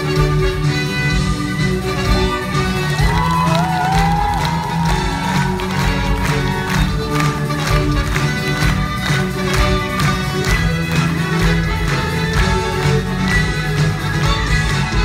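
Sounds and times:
string orchestra playing: 4.4 - 15.0.

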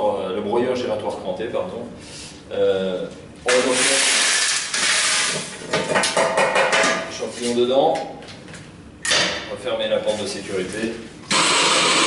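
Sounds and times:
rock fragments pouring into hopper: 3.7 - 5.3.

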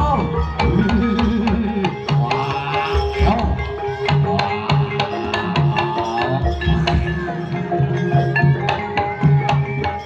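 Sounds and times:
gamelan tones: 0.0 - 10.0
held gliding melody line: 0.0 - 10.0.

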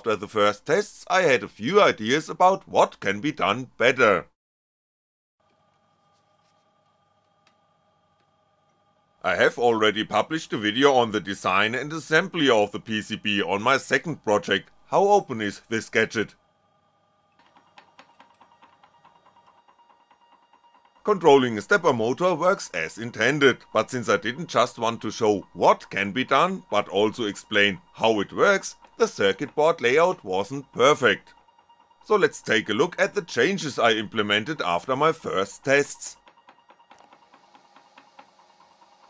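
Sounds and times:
stepper motor ticking: 17.4 - 39.0.

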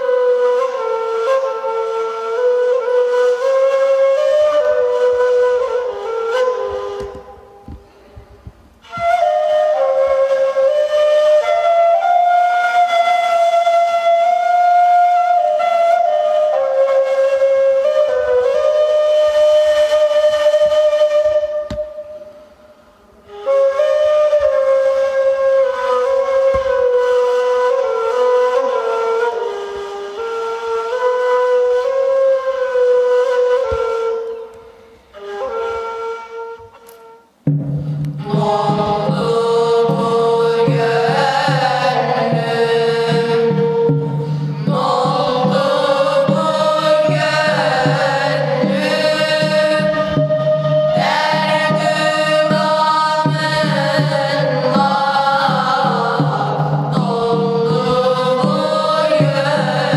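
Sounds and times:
end-blown reed flute melody: 0.0 - 7.8, 8.8 - 22.5, 23.2 - 59.9.

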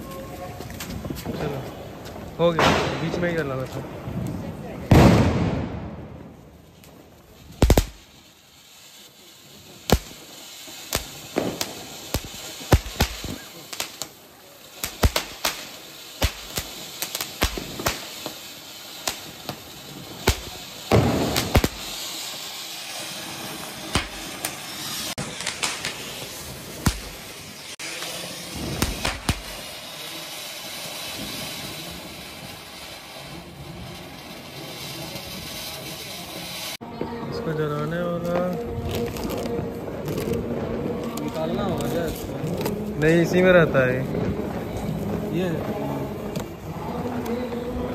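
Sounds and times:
firecracker bangs: 0.0 - 8.5, 9.2 - 47.9
fountain firecracker hissing: 0.0 - 47.9.

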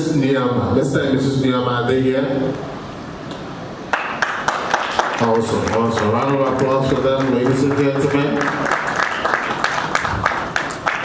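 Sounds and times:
crowd applause: 3.9 - 11.0.

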